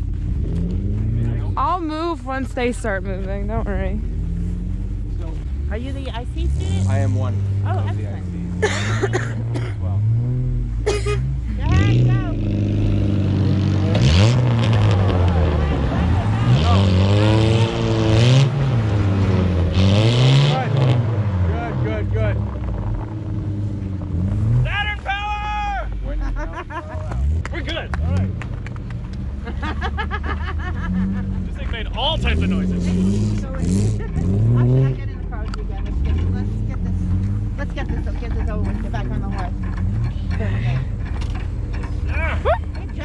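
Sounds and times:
car engines revving: 0.0 - 43.0.

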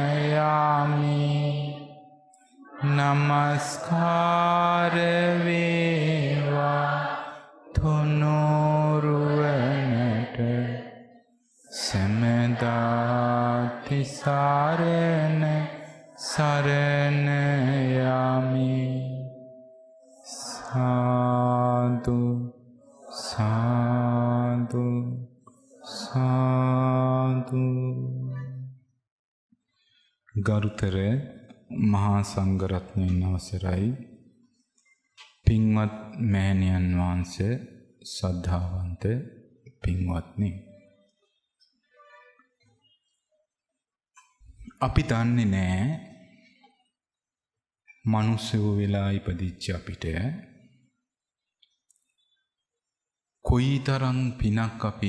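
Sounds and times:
monk chanting in low voice: 0.0 - 28.8, 30.3 - 34.2, 35.4 - 40.9, 44.6 - 46.8, 47.9 - 50.6, 53.4 - 55.0.

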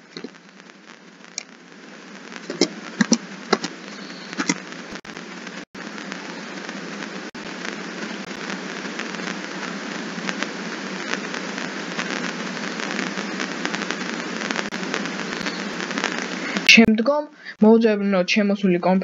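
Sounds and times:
steady hiss: 0.0 - 17.6.

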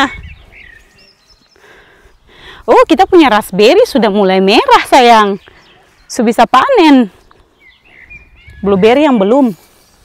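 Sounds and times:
faint bird chirps: 0.0 - 2.6, 7.1 - 10.0
soft rustle: 9.3 - 10.0.

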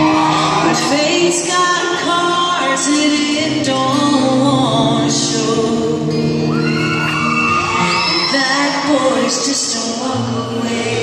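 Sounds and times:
crowd cheering and whooping: 0.0 - 1.5, 6.4 - 9.8
country band playing with singing: 0.0 - 11.0.

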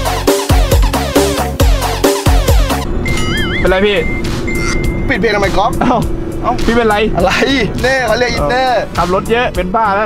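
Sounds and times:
car cabin drone: 2.5 - 8.9
wavering whistle-like tone: 3.0 - 5.1.

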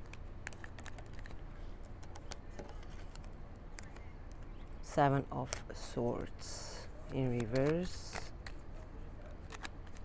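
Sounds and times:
cards being shuffled: 0.0 - 4.5, 7.2 - 8.6, 9.3 - 10.0.

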